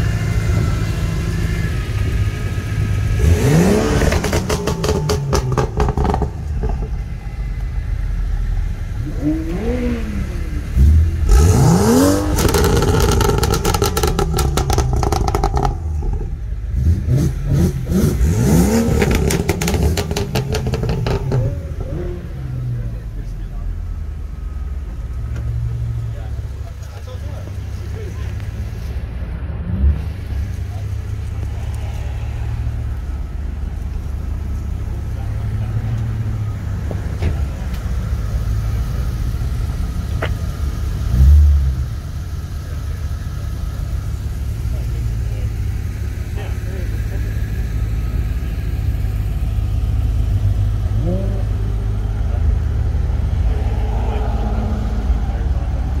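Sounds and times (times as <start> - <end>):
car engines idling: 0.0 - 56.0.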